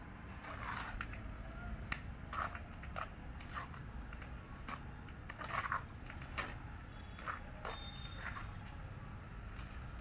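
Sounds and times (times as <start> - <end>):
trowel scraping wet mortar: 0.3 - 1.4, 2.2 - 8.7.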